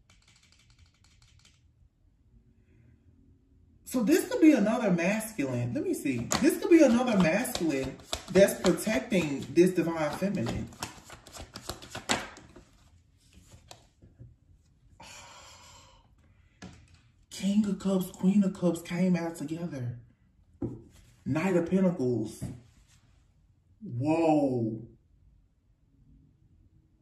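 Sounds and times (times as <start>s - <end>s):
cards tapping on table: 6.2s - 12.6s.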